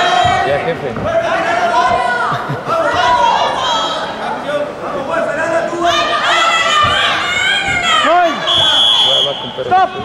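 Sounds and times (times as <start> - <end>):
raised voices: 0.0 - 10.0
high-pitched whistle blast: 8.4 - 9.6.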